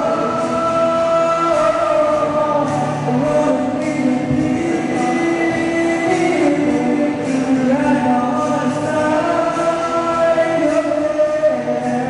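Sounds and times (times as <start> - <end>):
male voices singing in harmony: 0.0 - 12.0.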